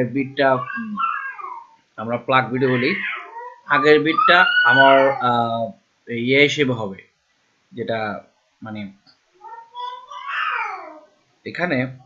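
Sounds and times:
man speaking: 0:00.0 - 0:00.7, 0:02.0 - 0:03.1, 0:03.7 - 0:07.0, 0:07.8 - 0:09.0, 0:11.5 - 0:12.0.

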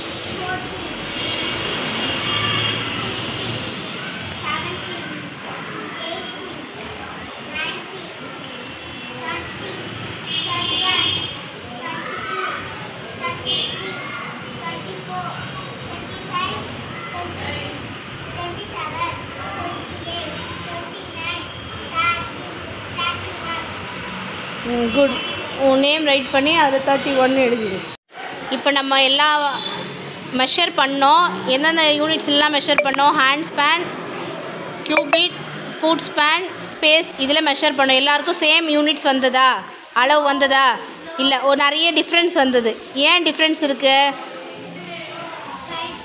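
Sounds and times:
children chattering and calling out: 0:00.0 - 0:46.0.

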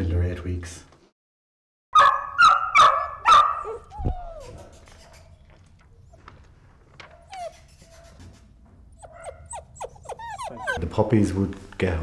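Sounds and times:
puppies yapping: 0:02.0 - 0:06.3, 0:07.0 - 0:11.0
puppy whine: 0:03.6 - 0:06.3, 0:07.0 - 0:08.0, 0:08.9 - 0:10.9.

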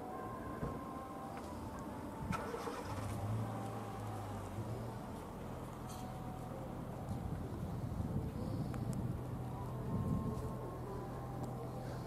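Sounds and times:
low steady engine hum: 0:00.0 - 0:12.0.

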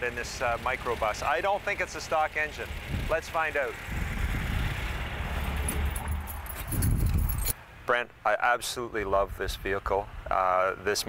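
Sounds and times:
van engine idling: 0:00.0 - 0:07.0
keys jingling: 0:05.4 - 0:07.6.

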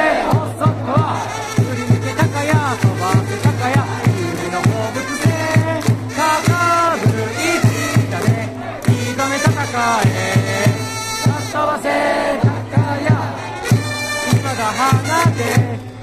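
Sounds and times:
crowd chanting: 0:00.0 - 0:16.0
trumpets: 0:00.0 - 0:16.0
steady drum beat: 0:00.3 - 0:11.6, 0:12.4 - 0:15.8.

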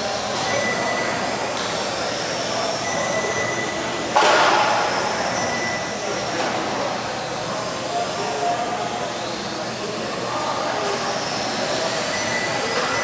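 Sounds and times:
rc car motors whining: 0:09.1 - 0:13.0.

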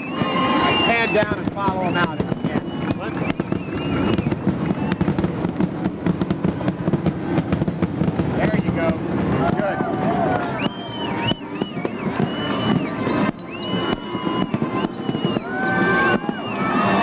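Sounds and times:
shouts and whistles: 0:00.0 - 0:05.2, 0:09.4 - 0:17.0
crowd cheering and chattering: 0:00.0 - 0:17.0
sharp claps and pops: 0:00.0 - 0:17.0.

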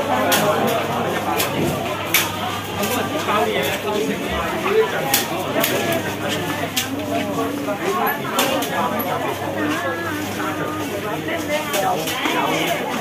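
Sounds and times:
crowd babble: 0:00.0 - 0:13.0
clicks and clatters: 0:00.1 - 0:04.2, 0:04.8 - 0:13.0.

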